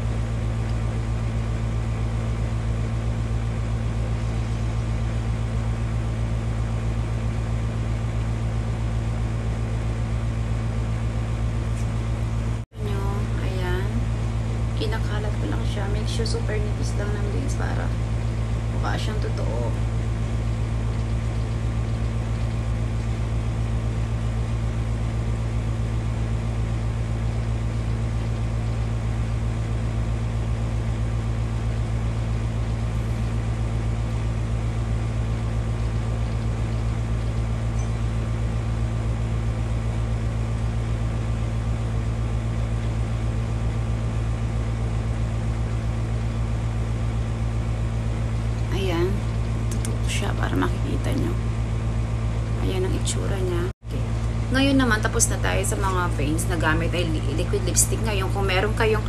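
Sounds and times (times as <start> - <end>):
low electrical hum: 0.0 - 59.0.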